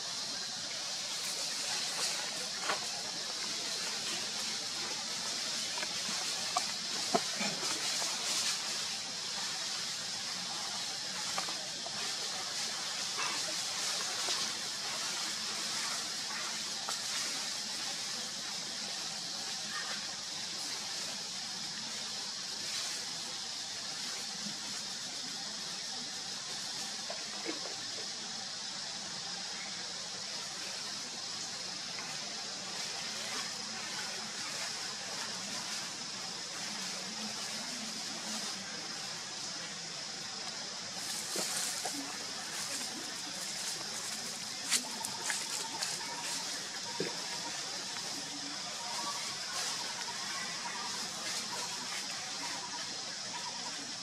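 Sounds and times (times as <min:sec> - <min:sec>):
outdoor ambience hiss: 0:00.0 - 0:54.0.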